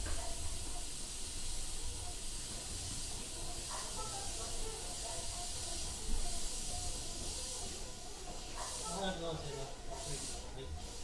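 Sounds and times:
train cabin hiss: 0.0s - 11.0s.

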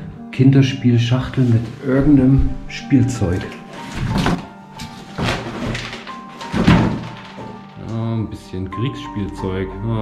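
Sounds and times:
background music: 0.0s - 10.0s
cardboard box thunks and scraping: 3.9s - 7.2s.

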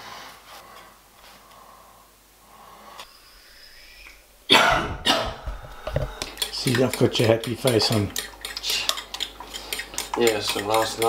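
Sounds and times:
person coughing: 4.5s - 5.5s.

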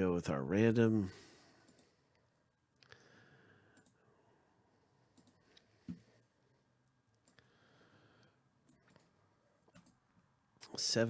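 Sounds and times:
computer mouse clicks: 1.6s - 2.0s, 3.7s - 4.0s, 5.1s - 6.0s, 7.1s - 7.5s, 8.6s - 10.0s.

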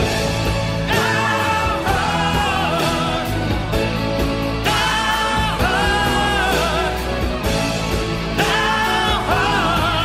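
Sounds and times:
rock band playing: 0.0s - 10.0s
wordless held vocals with vibrato: 0.8s - 3.8s, 4.5s - 7.5s, 8.2s - 10.0s.

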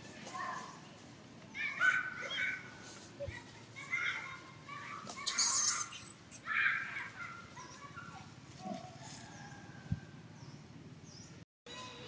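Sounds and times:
high-pitched animal calls: 5.2s - 6.9s.

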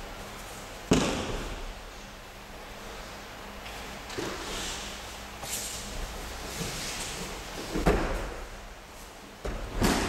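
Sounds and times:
slap on a mat: 0.9s - 1.6s.

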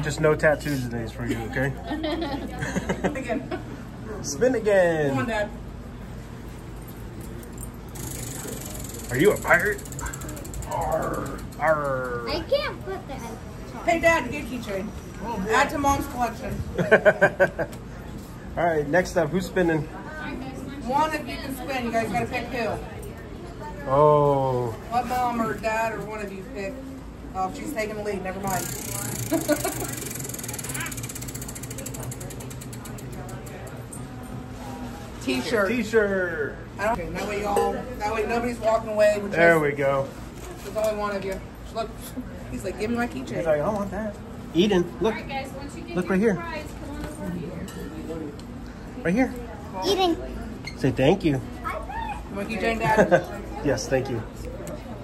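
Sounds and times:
prize wheel clicker ticking: 8.0s - 12.2s, 28.5s - 33.8s.

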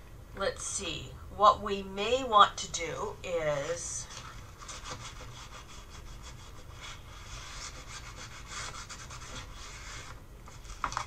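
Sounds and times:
hand rubbing paper: 4.0s - 11.0s.

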